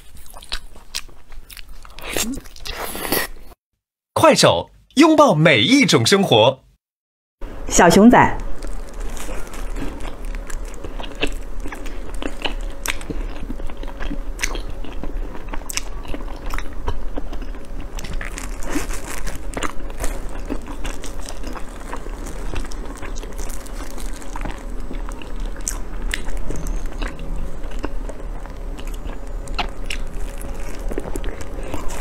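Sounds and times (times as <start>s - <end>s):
biting and chewing: 8.4s - 32.0s.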